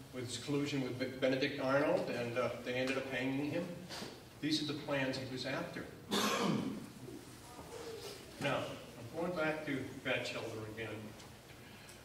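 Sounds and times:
man coughing into a microphone: 6.1s - 6.9s.

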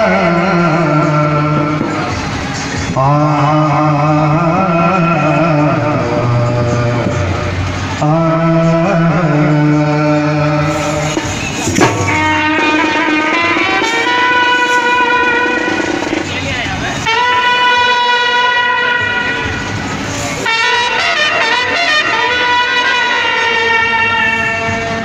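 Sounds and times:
amplified band music: 0.0s - 25.0s.

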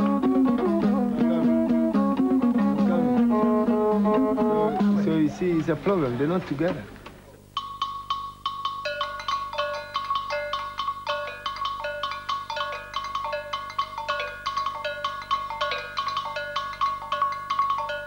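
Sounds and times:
mallet percussion music: 7.6s - 18.0s.

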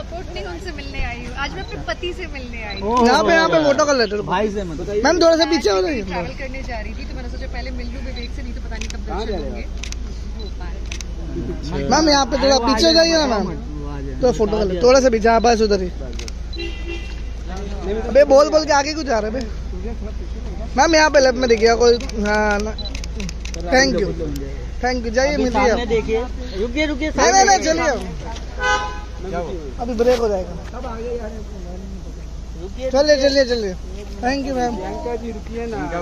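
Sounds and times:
low street rumble: 0.0s - 36.0s
man calling out: 2.8s - 6.3s, 25.2s - 28.1s
vehicle horn honk: 16.5s - 17.5s, 28.6s - 29.3s.

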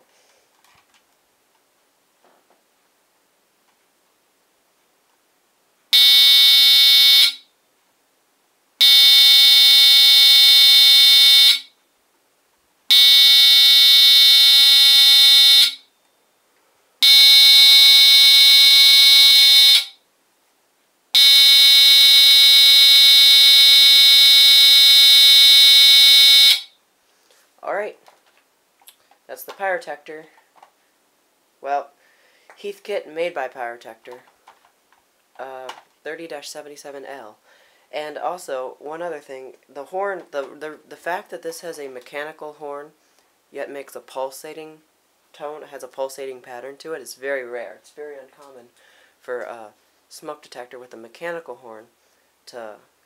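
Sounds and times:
smoke alarm horn buzzing: 6.0s - 7.4s, 8.8s - 11.7s, 12.9s - 15.9s, 17.0s - 20.0s, 21.2s - 26.8s.

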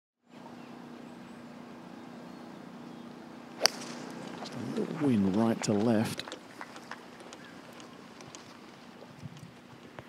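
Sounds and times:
outdoor background hum: 0.2s - 10.0s
golf club striking ball: 3.5s - 5.5s.

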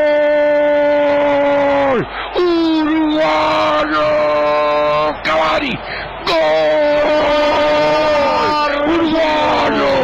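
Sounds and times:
commentator's drawn-out goal cry: 0.0s - 10.0s.

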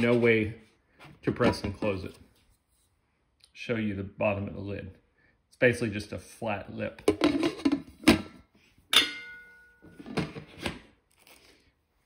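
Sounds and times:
pot lid clinking: 8.9s - 9.8s.

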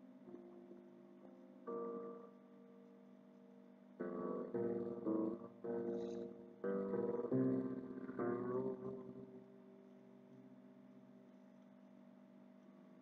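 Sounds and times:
plucked string instrument melody: 4.0s - 9.4s.

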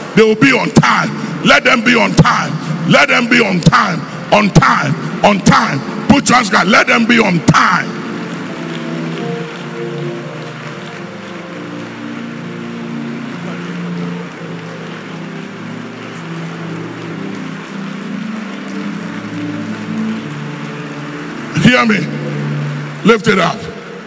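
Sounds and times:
background hiss: 0.0s - 24.0s
soft keyboard chords: 0.0s - 24.0s.

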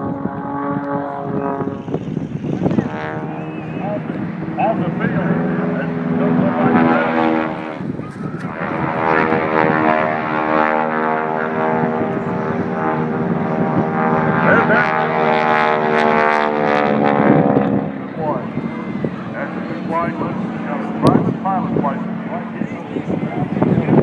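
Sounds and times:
aircraft engine droning overhead: 0.0s - 24.0s.

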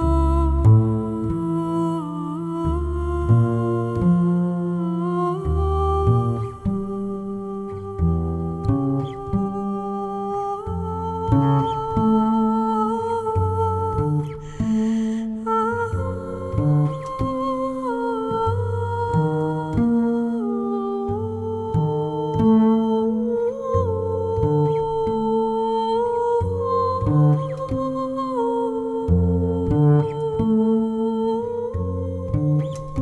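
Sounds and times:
plucked double bass: 0.0s - 33.0s
woman humming long notes: 0.0s - 33.0s.

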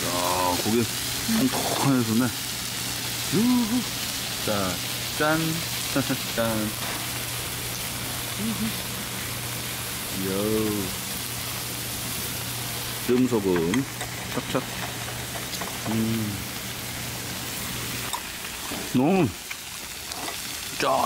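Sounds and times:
meat sizzling on a griddle: 0.0s - 21.0s
person humming while eating: 3.3s - 3.8s, 8.3s - 8.9s, 15.9s - 16.4s.

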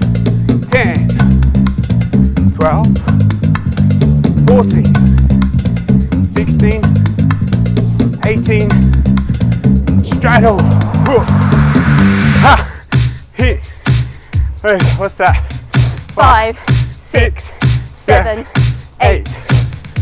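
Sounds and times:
workout music with bass line: 0.0s - 20.0s.

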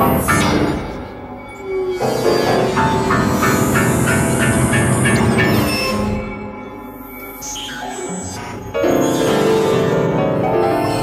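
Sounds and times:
piano with electronic tape: 2.0s - 5.9s.

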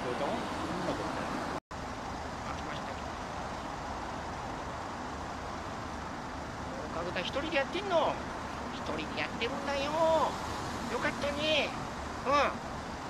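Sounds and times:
city road traffic: 0.0s - 13.0s.

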